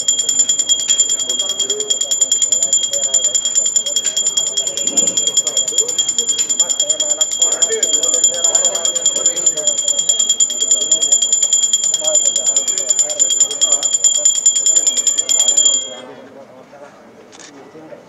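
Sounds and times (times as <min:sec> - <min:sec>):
bell ringing rapidly: 0:00.0 - 0:16.0
voices: 0:00.0 - 0:16.2.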